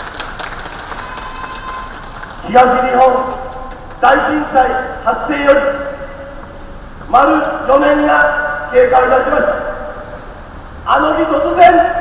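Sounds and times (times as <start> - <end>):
audience clapping: 0.0 - 4.0
street background noise: 0.0 - 12.0.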